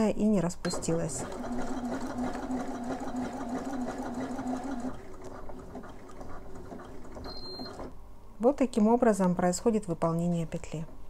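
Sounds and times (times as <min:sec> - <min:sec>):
sewing machine stitching: 0:00.7 - 0:08.0.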